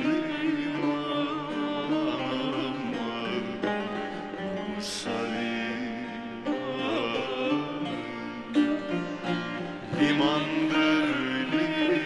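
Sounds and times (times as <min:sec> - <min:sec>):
man singing: 0:00.0 - 0:08.8, 0:09.9 - 0:12.0
plucked string accompaniment: 0:00.0 - 0:12.0.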